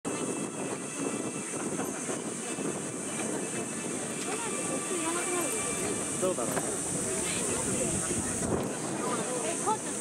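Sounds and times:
murmur of spectators: 2.2 - 10.0.

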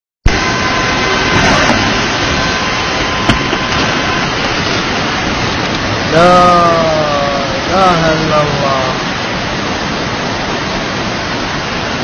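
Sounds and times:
floodwater rushing: 0.3 - 12.0.

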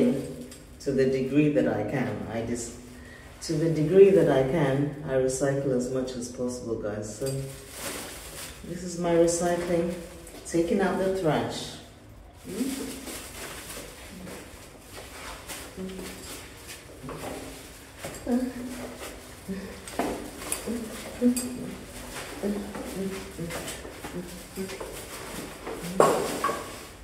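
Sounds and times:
indistinct voices: 18.2 - 26.6.

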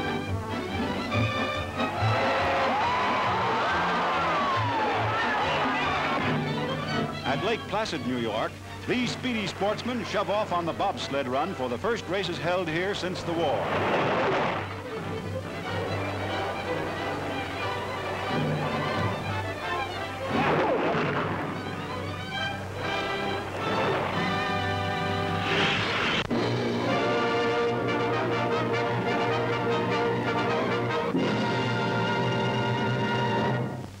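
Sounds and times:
newsreel music with held chords: 0.0 - 34.0.

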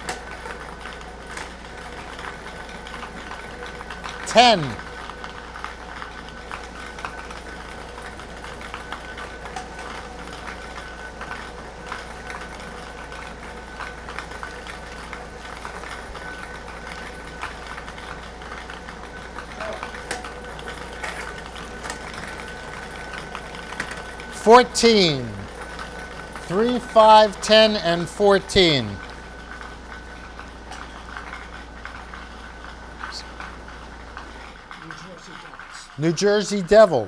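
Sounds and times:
blower humming: 0.0 - 37.0.

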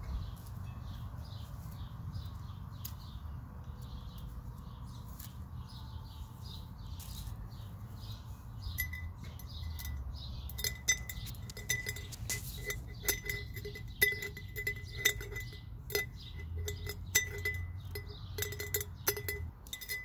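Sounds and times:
scissors snipping twigs: 2.3 - 3.1, 5.0 - 5.5
clinks on glass jar: 8.6 - 20.0.

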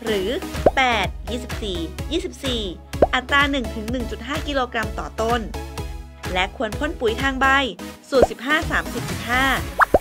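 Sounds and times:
woman voice-over: 0.0 - 5.6, 6.2 - 9.8
background music: 0.0 - 10.0
rising pop blips: 9.7 - 10.0.

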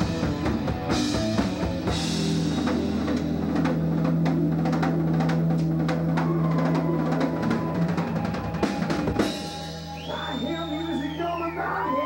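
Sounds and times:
drum fills and rolls: 0.0 - 11.4.

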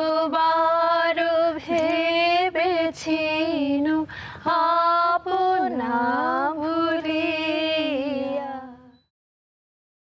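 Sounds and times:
woman drawing breath: 4.1 - 4.4.

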